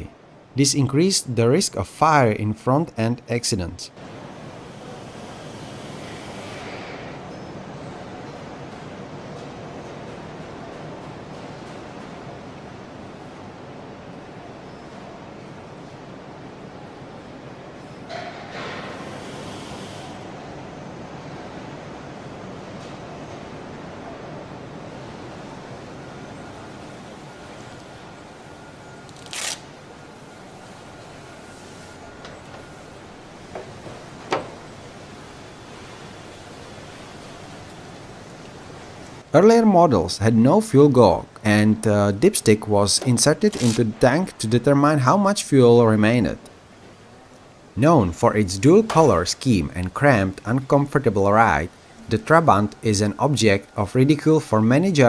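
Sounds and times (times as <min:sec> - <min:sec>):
steady background noise: 0:00.0 - 0:55.0.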